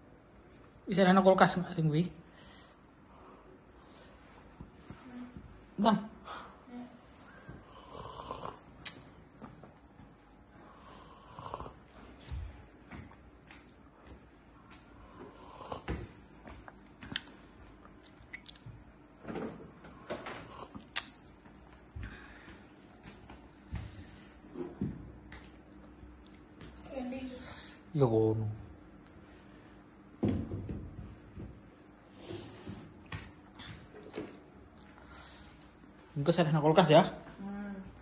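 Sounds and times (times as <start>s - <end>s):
crickets trilling: 0.0s - 38.0s
lower cricket trill in bouts: 0.0s - 38.0s.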